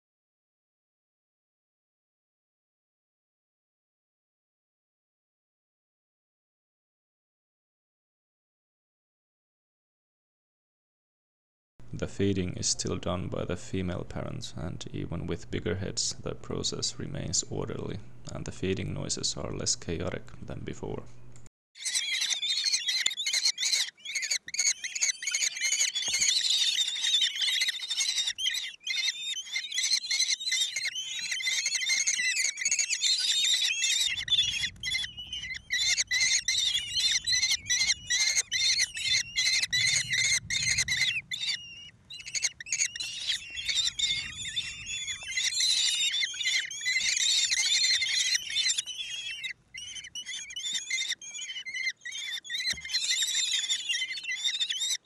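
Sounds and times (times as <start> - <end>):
nestlings begging calls: 21.8 - 55.0
low rumble of movement: 34.1 - 45.8.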